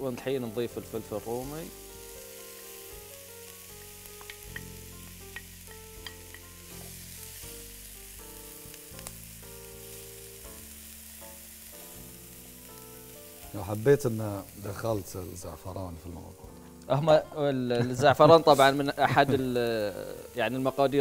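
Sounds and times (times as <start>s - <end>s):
vegetables sizzling in a frying pan: 0.0s - 16.2s, 17.7s - 21.0s
wooden spoon clicking against pan: 5.3s - 6.5s.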